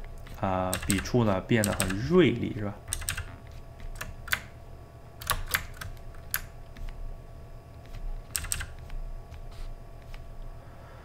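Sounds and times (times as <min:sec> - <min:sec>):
keyboard keys clicking: 0:00.0 - 0:02.1, 0:02.9 - 0:04.6, 0:05.2 - 0:07.0, 0:07.8 - 0:09.4.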